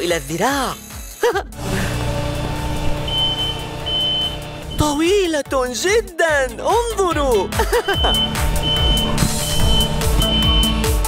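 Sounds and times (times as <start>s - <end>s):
machine engine running: 1.6s - 4.9s, 8.1s - 10.6s
backup alarm beeping: 2.9s - 5.0s, 7.8s - 10.9s.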